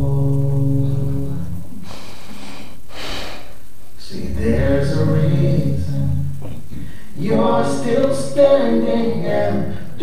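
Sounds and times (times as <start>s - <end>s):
breath into close microphone: 1.8s - 3.6s, 6.7s - 7.2s
low underlying sound: 4.0s - 9.8s.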